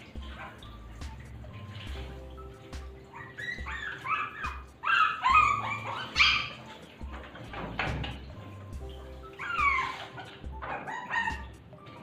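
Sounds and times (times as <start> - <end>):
puppy crying: 3.0 - 6.8, 9.2 - 12.0.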